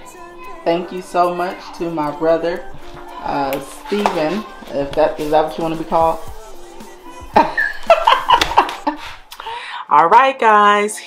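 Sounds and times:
background music: 0.0s - 10.1s
person speaking: 0.8s - 6.8s.

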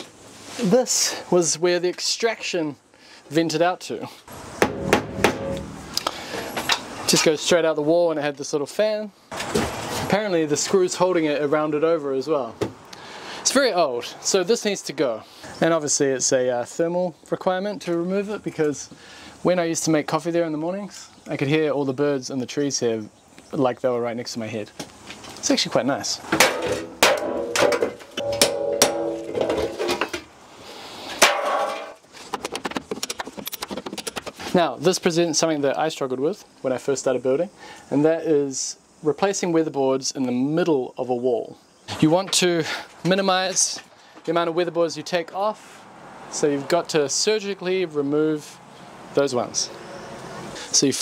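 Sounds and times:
hammer striking chisel: 4.6s - 5.7s, 27.0s - 29.2s.

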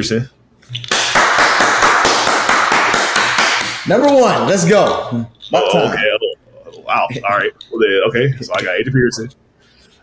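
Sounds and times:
rapid hand claps: 0.8s - 5.0s.

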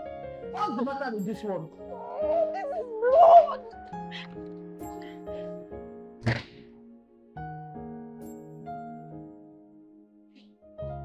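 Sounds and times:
sharp thunk: 6.2s - 6.7s.

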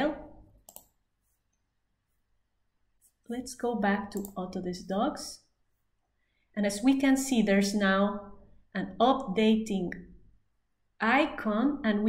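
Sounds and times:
computer mouse click: 0.6s - 1.0s, 4.1s - 4.4s.

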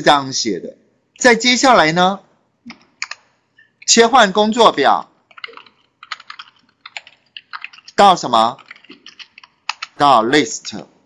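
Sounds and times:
computer keyboard typing: 2.7s - 3.8s, 5.3s - 10.0s.

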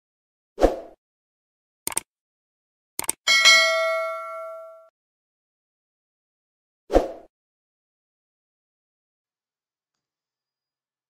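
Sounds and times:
mouse clicks: 1.9s - 2.1s, 3.0s - 3.2s
notification bell ding: 3.3s - 4.9s.

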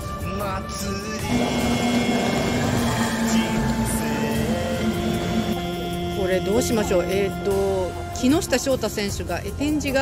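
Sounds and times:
background music: 0.0s - 10.0s
held tone: 1.2s - 7.0s
outboard motors droning: 1.2s - 8.8s.

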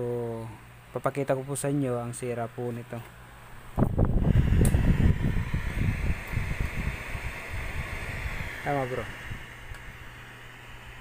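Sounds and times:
television power-on buzz: 3.3s - 11.0s.

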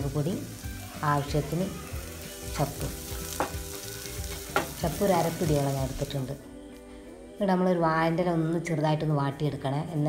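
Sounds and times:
masala sizzling in a pan: 0.0s - 6.4s.

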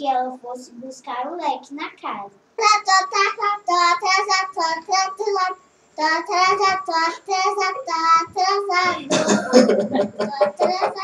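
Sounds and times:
child singing: 2.6s - 11.0s
laughter: 8.9s - 11.0s.

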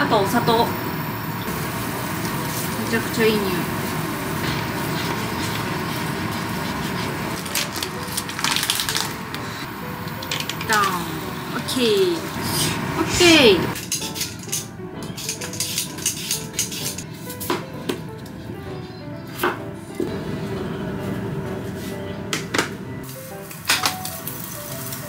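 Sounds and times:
food sizzling in frying pan: 0.1s - 14.5s, 23.0s - 25.0s.

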